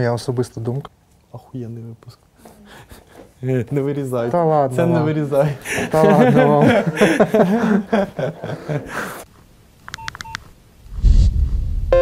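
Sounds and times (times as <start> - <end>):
touch-tone electronic beeps: 9.9 - 10.4.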